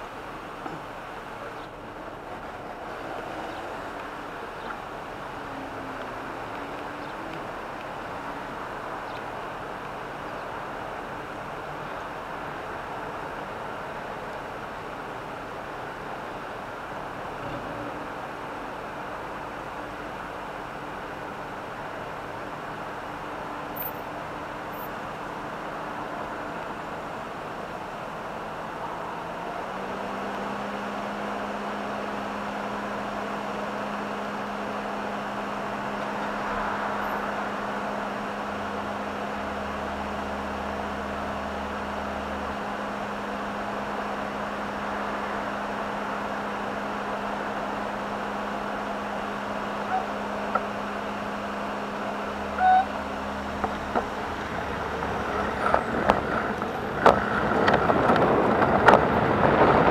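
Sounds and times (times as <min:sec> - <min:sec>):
engine idling close by: 0:00.0 - 0:59.9
street traffic noise: 0:00.0 - 0:59.9.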